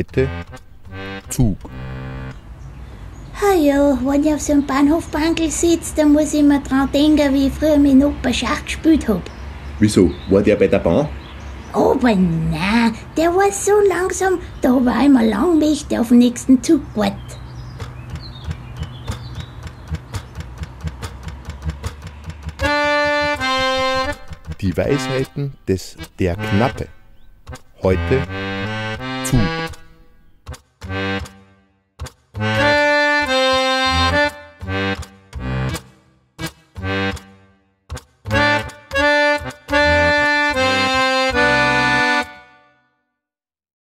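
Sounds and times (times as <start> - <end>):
harmonium held notes: 0.0 - 3.0, 17.1 - 31.7, 32.4 - 37.6, 38.2 - 42.8
rapid irregular clicking: 17.6 - 26.2, 27.3 - 31.4.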